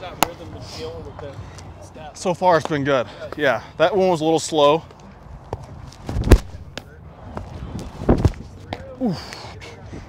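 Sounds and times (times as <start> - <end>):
baseball smacking into mitt: 6.1 - 6.9.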